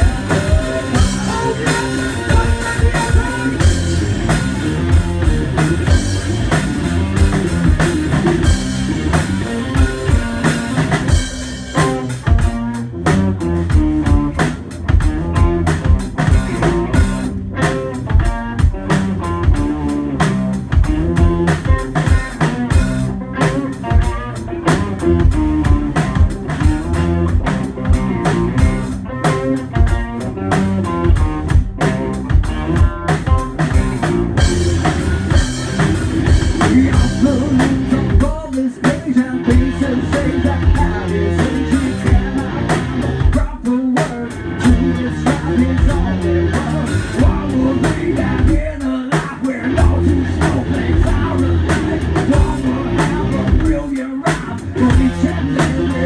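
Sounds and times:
drum kit beat: 0.0 - 56.0
electric guitar heavy riff: 0.0 - 56.0.

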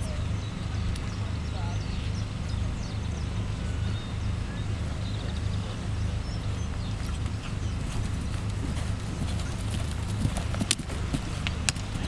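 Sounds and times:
horse hooves cantering on turf: 6.6 - 12.0
sharp hoof thuds: 7.0 - 12.0.

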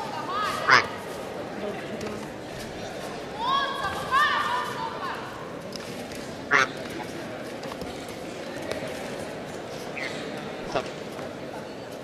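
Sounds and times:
background hubbub: 0.0 - 12.0.

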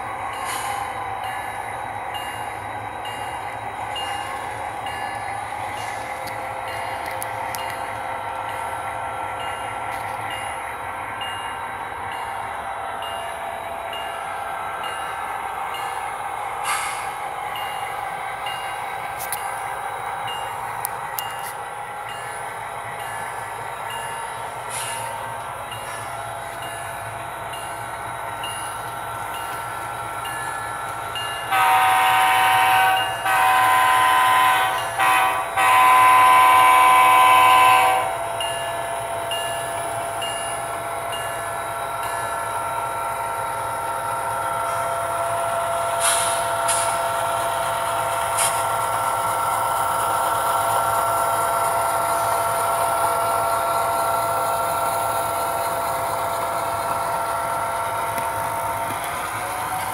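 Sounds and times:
locomotive bell dinging: 0.0 - 59.9
locomotive horn: 31.5 - 38.2.

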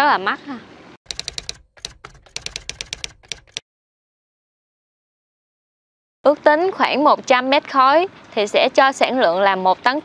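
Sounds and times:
keyboard key clicks: 1.1 - 3.6.

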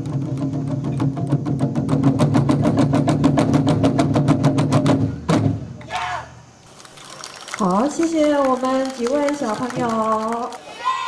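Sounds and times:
taiko drum roll: 0.0 - 5.8.

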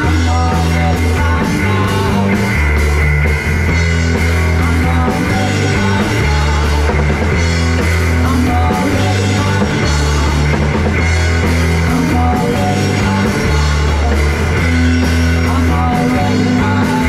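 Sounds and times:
deep held bass notes: 0.0 - 17.0
drum kit: 0.0 - 17.0
electric and acoustic guitars: 0.0 - 17.0.

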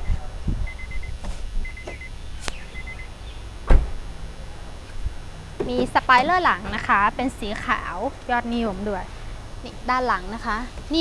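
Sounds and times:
short high electronic beeps: 0.0 - 3.2
car door shutting thump: 3.6 - 4.0.

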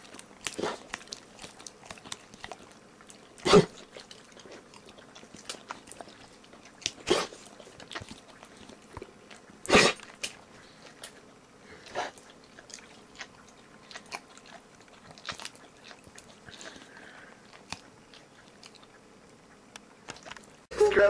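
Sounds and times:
dog licking and smacking mouth: 0.0 - 11.3.

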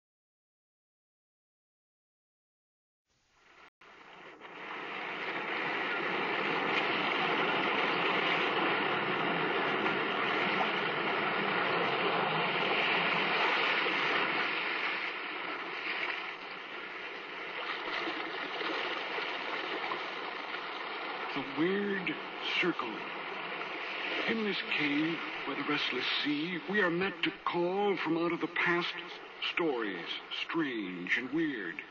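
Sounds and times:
sea surf waves washing: 3.8 - 31.9.

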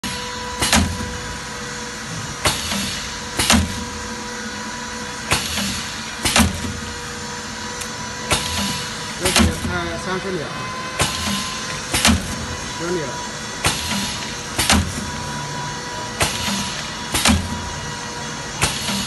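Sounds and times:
steady machine hum: 0.0 - 19.0.

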